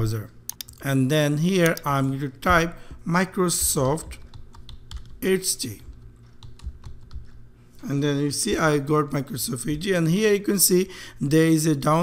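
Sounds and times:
keyboard typing clicks: 0.5 - 0.8, 1.6 - 2.6, 3.6 - 5.2, 5.9 - 7.4.

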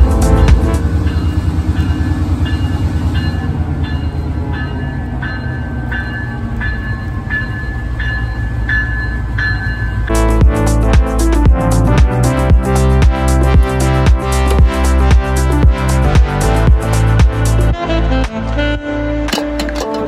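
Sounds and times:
music: 0.0 - 2.6, 6.0 - 20.0
diesel locomotive passing: 0.0 - 18.6.

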